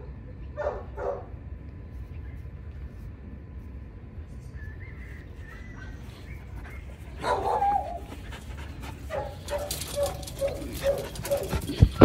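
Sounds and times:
dogs barking: 0.6 - 1.3, 6.5 - 12.0
dogs scuffling: 6.0 - 12.0
dog crying: 6.9 - 8.4, 9.1 - 12.0.

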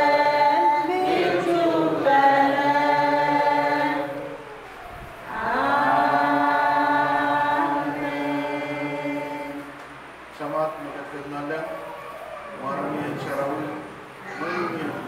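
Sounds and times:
congregation singing in chorus: 0.0 - 11.7, 12.5 - 14.2.

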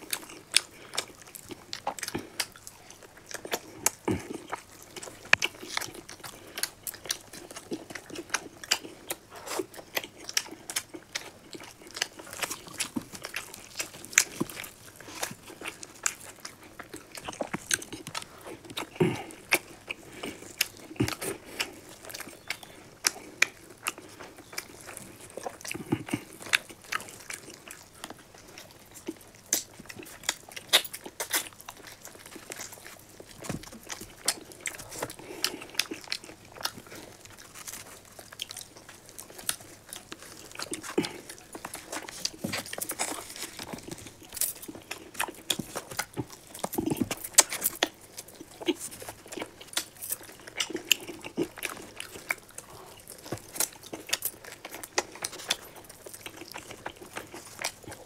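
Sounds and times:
people chewing and biting: 0.0 - 58.0.

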